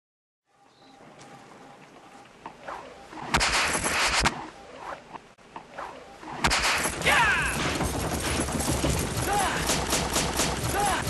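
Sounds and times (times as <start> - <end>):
sharp cracks in bursts: 3.3 - 4.4, 6.4 - 11.0.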